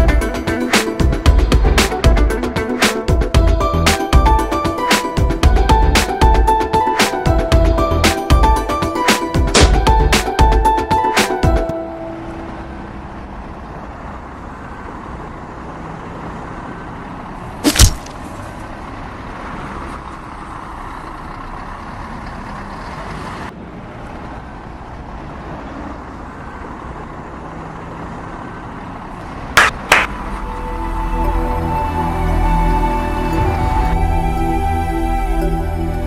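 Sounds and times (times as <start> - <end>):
road traffic noise: 0.0 - 36.0.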